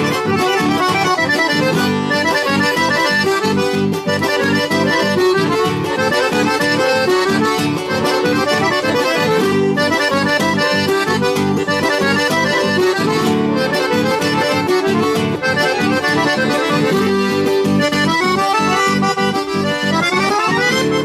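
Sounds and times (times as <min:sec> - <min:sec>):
accordions playing a lively tune: 0:00.0 - 0:21.0
acoustic guitar strumming: 0:00.0 - 0:21.0.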